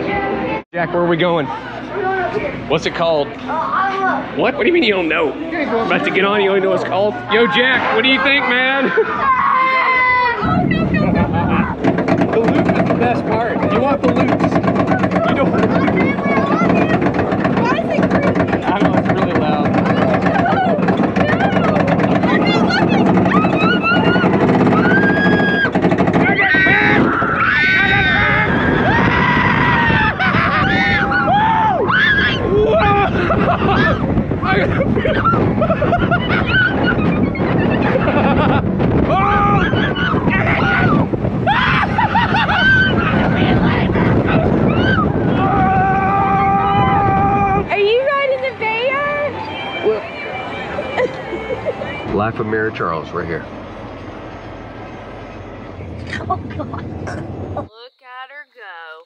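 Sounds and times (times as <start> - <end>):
mechanical hum: 0.0 - 59.0
riders whooping and shrieking: 7.2 - 52.1
wind rushing over microphone: 10.0 - 50.9
lift chain clacking: 10.6 - 27.3.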